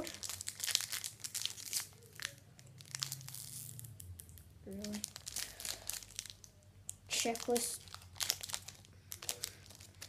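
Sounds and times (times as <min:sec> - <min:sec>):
card packet wrapper crinkling: 0:00.0 - 0:10.0.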